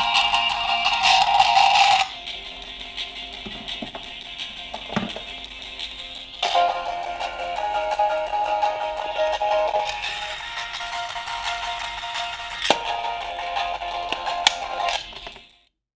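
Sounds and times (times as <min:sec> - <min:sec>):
thin music from small speakers: 0:00.0 - 0:15.7.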